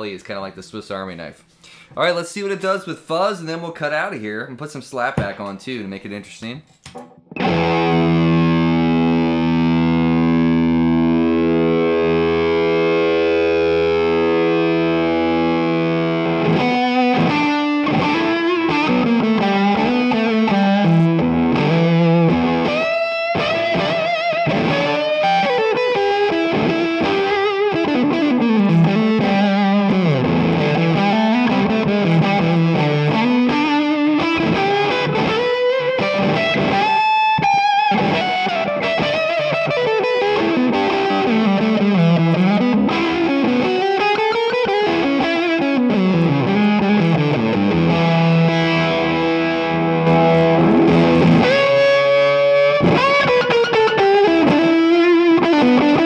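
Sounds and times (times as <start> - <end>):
distorted electric guitar lead: 7.0 - 56.0.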